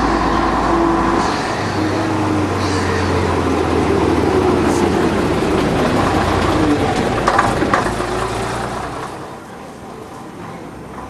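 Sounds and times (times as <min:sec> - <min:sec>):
bus engine running loudly: 0:00.0 - 0:11.0.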